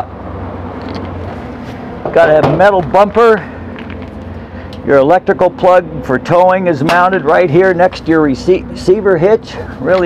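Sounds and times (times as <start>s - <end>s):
low outdoor hum and rumble: 0.0s - 10.0s.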